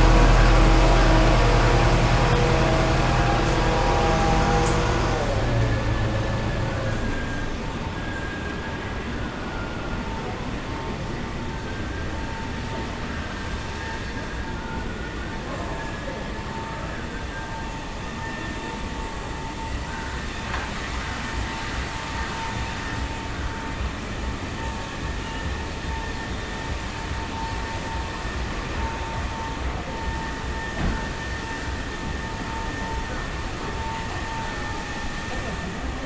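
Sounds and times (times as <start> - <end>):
thin high whine: 0.0 - 9.2
city street low rumble: 0.0 - 36.0.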